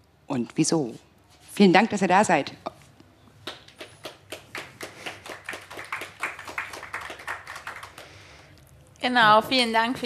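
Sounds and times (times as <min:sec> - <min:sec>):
audience applauding: 0:03.4 - 0:08.3.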